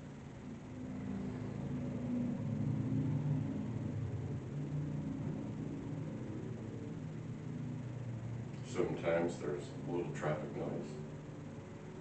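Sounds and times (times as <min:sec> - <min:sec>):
road traffic rumble from indoors: 0:00.0 - 0:12.0.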